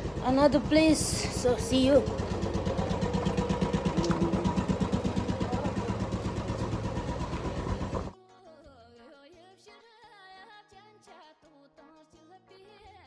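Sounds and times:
vehicle engine idling: 0.0s - 8.1s.

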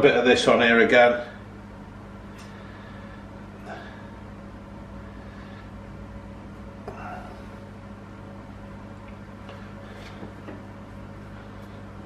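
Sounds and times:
appliance humming: 0.0s - 12.0s.

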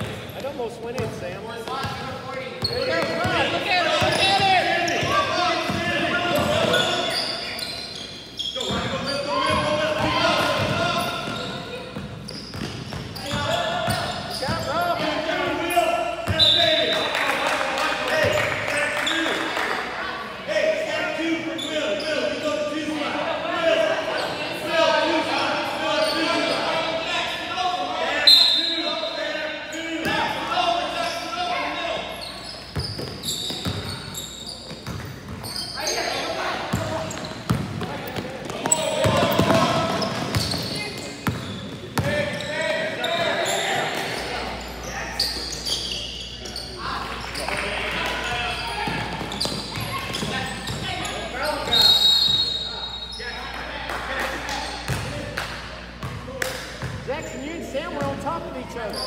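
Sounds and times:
voices in a gym: 0.0s - 59.0s.

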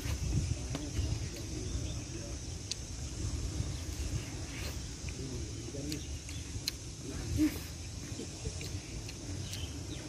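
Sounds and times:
steady high hiss: 0.0s - 10.0s
wind buffeting microphone: 0.0s - 10.0s
clicks from eating corn: 2.6s - 2.9s, 4.5s - 7.0s, 8.3s - 9.8s.

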